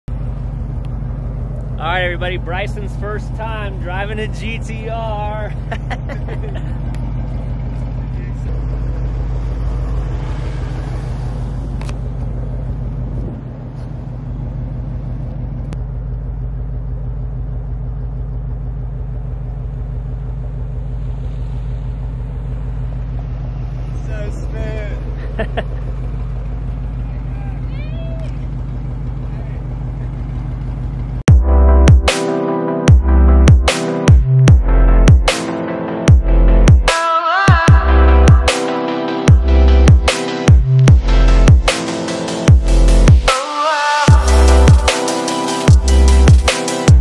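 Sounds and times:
car engine idling: 0.0 - 32.1, 32.9 - 47.0.

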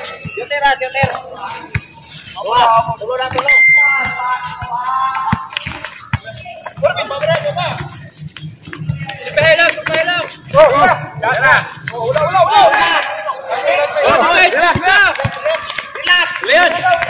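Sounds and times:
players calling out and talking: 0.0 - 17.0
basketball dribbling on concrete: 2.8 - 8.0, 14.0 - 15.4.

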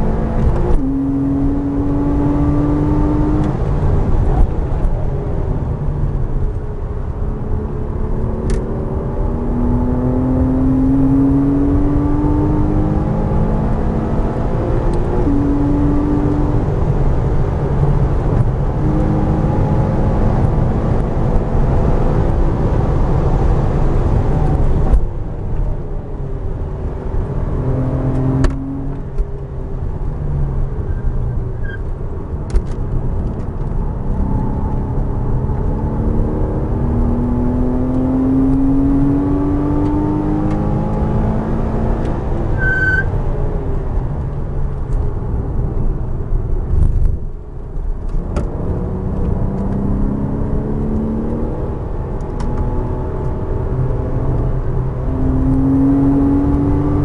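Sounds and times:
car engine at full throttle: 0.0 - 57.0.

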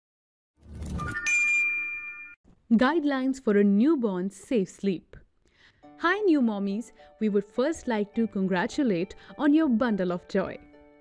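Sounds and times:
bright bell-like chime: 1.1 - 2.4.

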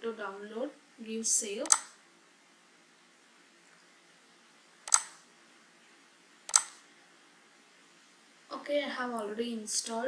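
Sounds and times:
computer mouse clicks: 1.6 - 2.0, 4.8 - 5.2, 6.5 - 6.8.

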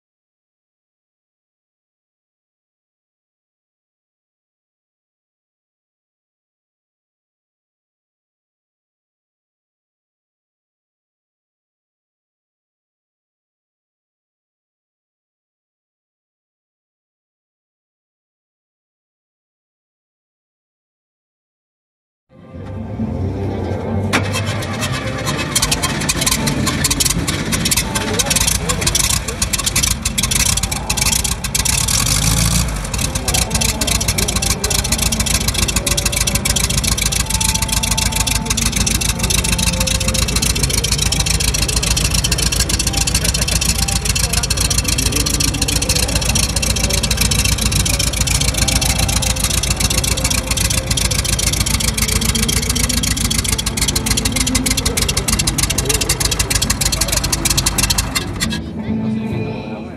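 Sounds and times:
car engine starting and idling: 22.6 - 59.0.

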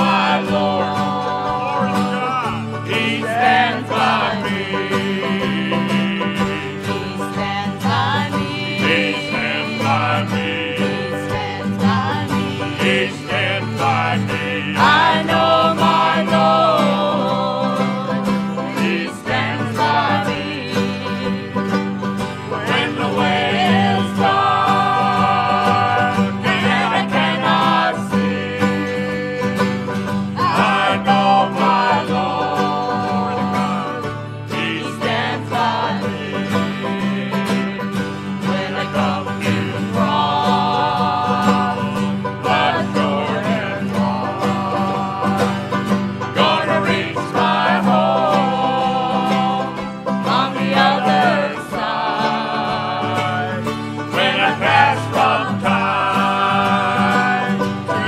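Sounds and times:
acoustic guitars and plucked strings: 0.0 - 58.0
group singing in harmony: 0.0 - 58.0.

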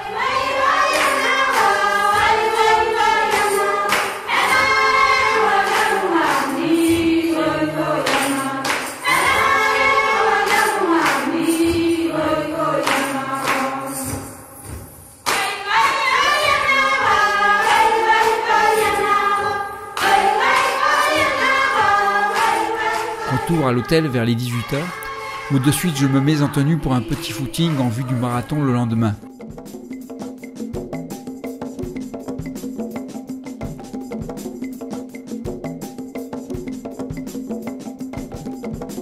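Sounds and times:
group singing in chorus: 0.0 - 28.9.

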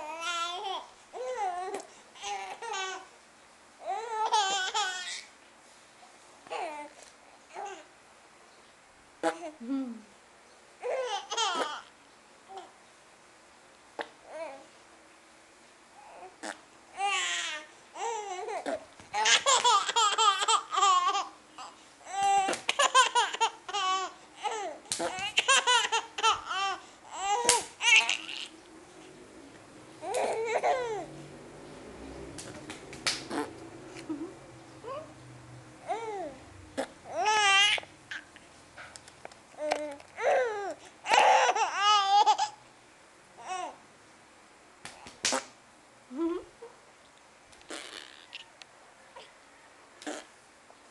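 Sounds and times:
baby giggling: 4.0 - 5.2, 10.9 - 11.9, 18.0 - 28.5
baby babbling: 6.5 - 6.9, 16.0 - 28.5, 30.0 - 31.1, 34.8 - 35.1, 35.8 - 38.3, 39.6 - 42.6.

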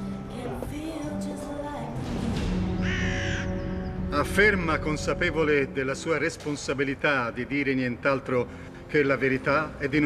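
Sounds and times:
soundtrack music with held tones: 0.0 - 10.0
crow cawing: 2.8 - 3.7.

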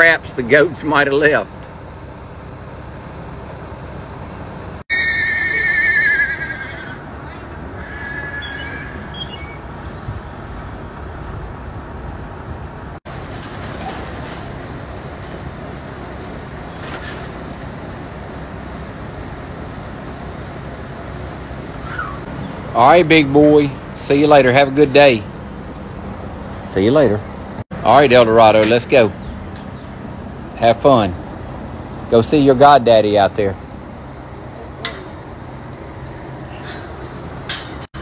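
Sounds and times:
horse whinnying: 4.9 - 7.0, 7.8 - 9.6.

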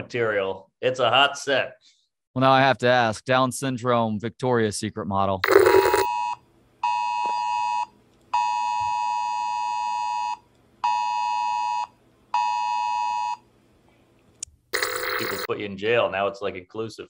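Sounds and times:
electronic alert tone blasts: 5.4 - 6.1.

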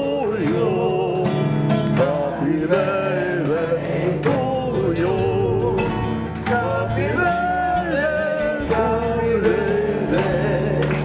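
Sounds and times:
acoustic guitars strummed: 0.0 - 11.0
men singing: 0.0 - 11.0.

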